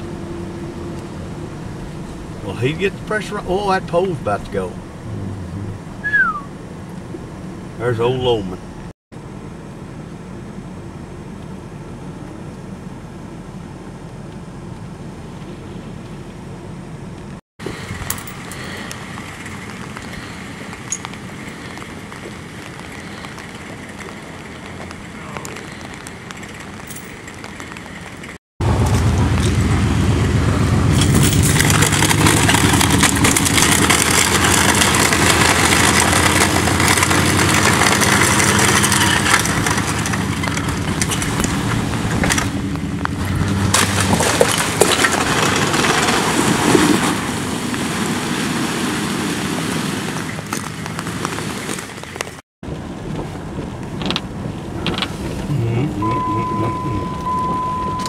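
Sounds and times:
truck engine running: 0.0s - 13.8s, 15.0s - 47.6s, 50.3s - 58.0s
wooden pole scraping on road: 30.9s - 52.4s.

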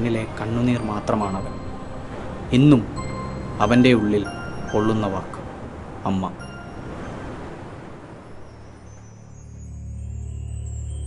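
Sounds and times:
waves breaking on a beach: 0.0s - 9.4s.

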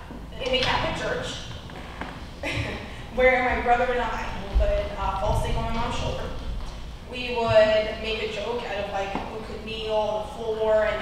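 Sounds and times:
woman talking into microphone: 0.4s - 1.4s, 2.4s - 6.5s, 7.1s - 11.0s
low thuds: 3.5s - 7.9s.

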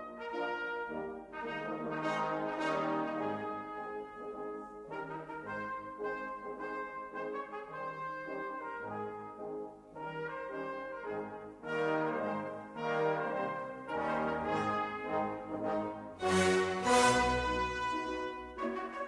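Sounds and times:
brass music with held chords: 0.0s - 19.0s.

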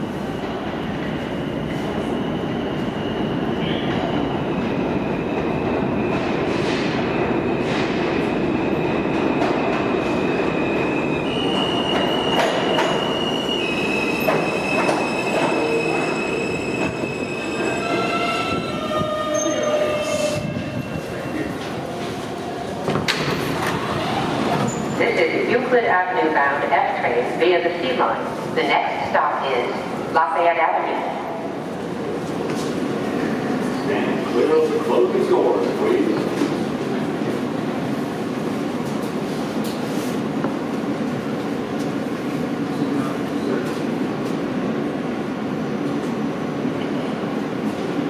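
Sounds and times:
subway train rumble: 0.0s - 48.0s.

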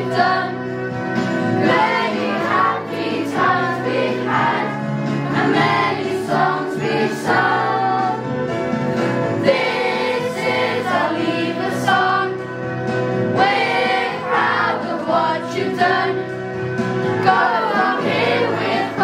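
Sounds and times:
children singing together: 0.0s - 0.6s, 1.6s - 8.2s, 9.4s - 12.4s, 13.3s - 16.2s, 17.2s - 19.0s.

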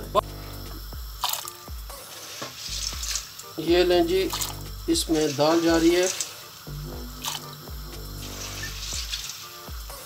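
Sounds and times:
beans splashing into water: 1.2s - 1.6s, 2.2s - 3.6s, 4.3s - 4.6s, 7.2s - 7.6s.

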